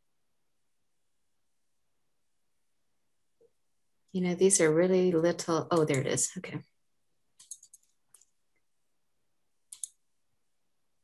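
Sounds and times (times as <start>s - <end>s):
computer mouse clicks: 5.7s - 6.2s, 7.4s - 8.4s, 9.6s - 10.0s.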